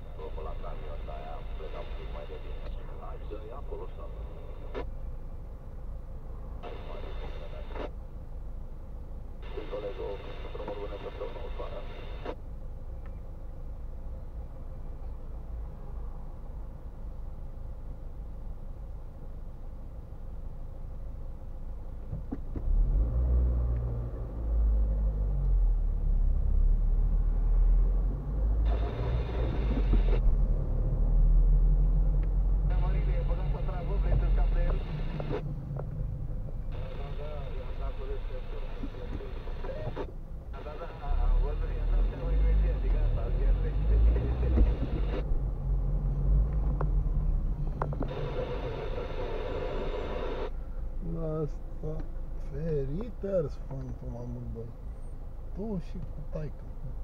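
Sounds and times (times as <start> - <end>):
muffled talk from car radio: 0.0 - 5.0, 6.6 - 8.0, 9.4 - 12.4, 28.6 - 30.2, 32.6 - 35.4, 36.7 - 45.3, 47.7 - 54.8, 55.5 - 57.0
car idling low rumble: 12.4 - 57.0.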